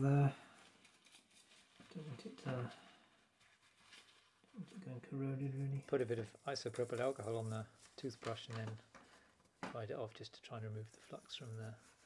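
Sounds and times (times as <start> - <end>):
person murmuring: 0.0 - 0.4.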